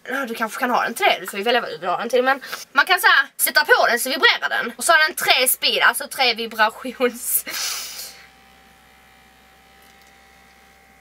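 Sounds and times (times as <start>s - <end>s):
vibrator buzzing: 3.4s - 11.0s.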